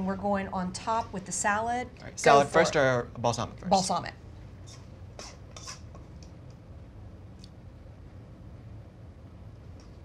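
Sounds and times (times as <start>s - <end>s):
low steady hum: 0.0s - 10.0s
utensil scraping metal bowl: 4.7s - 5.9s.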